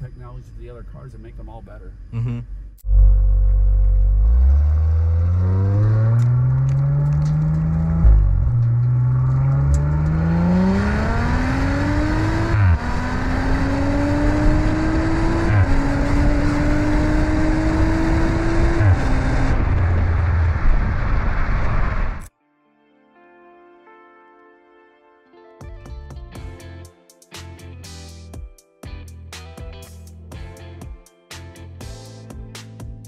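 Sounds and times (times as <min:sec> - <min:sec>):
car exhaust accelerating hard: 0:02.8 - 0:22.3
wind rushing over microphone: 0:13.6 - 0:22.3.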